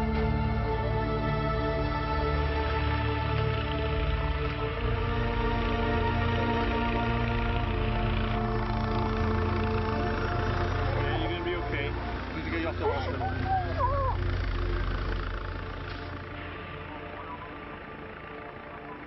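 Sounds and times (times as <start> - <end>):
background music: 0.0 - 19.0
helicopter rumble: 0.0 - 19.0.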